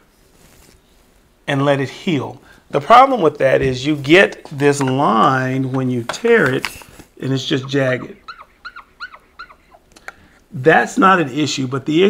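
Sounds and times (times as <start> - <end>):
marker squeaking on whiteboard: 5.6 - 9.9.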